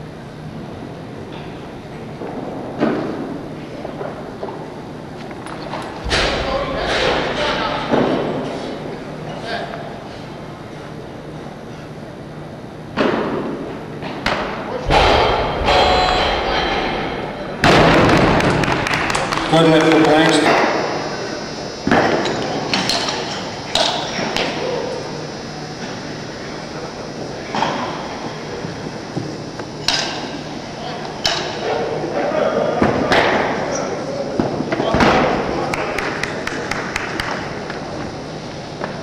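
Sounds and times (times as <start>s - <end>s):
indistinct voices: 14.7s - 39.0s.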